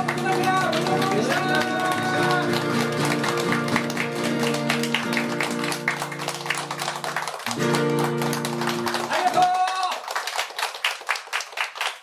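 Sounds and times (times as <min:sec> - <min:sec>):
acoustic guitars strumming chords: 0:00.0 - 0:09.5.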